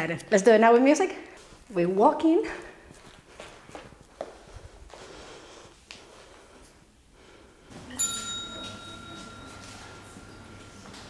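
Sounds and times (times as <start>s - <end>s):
soft footsteps on studio floor: 1.4s - 6.8s
music with held high note: 7.7s - 11.0s.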